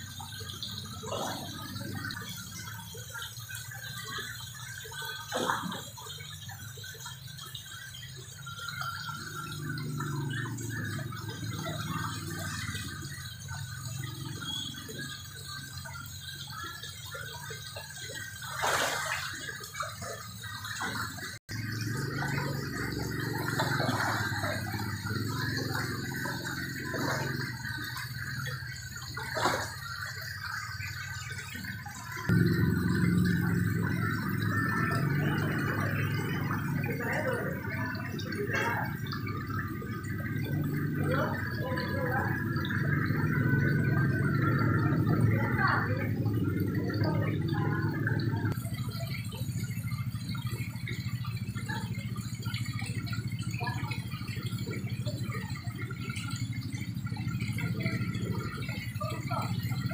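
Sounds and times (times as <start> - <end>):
low steady hum: 0.0 - 59.9
water pouring from a hose: 0.0 - 59.9
water splashing: 0.0 - 59.9.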